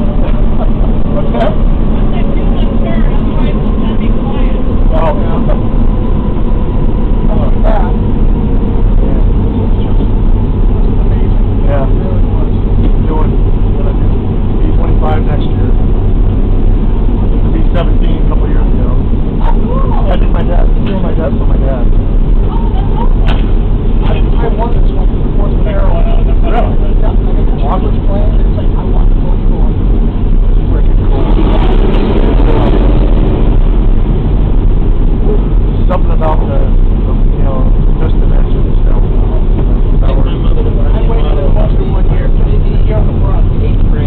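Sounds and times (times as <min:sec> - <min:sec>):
aircraft engines droning: 0:00.0 - 0:44.0.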